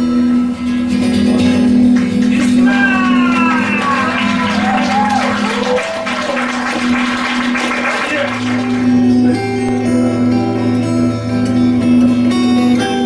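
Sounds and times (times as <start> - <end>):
guitar drone with sliding notes: 0.0 - 13.0.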